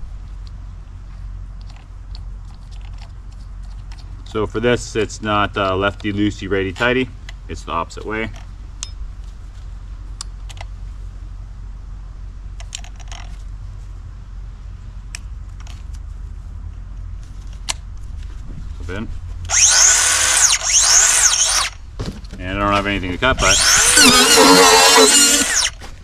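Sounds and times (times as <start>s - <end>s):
cut-off tool high whine: 19.5s - 21.8s, 23.3s - 25.8s.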